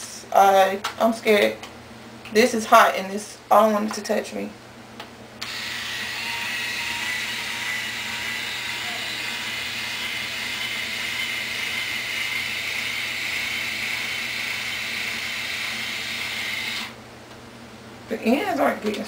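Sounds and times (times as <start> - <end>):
small motor whirring: 5.4 - 17.0.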